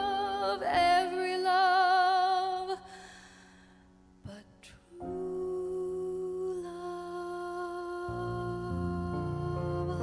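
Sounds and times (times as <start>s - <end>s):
woman singing a long note: 4.3s - 10.0s.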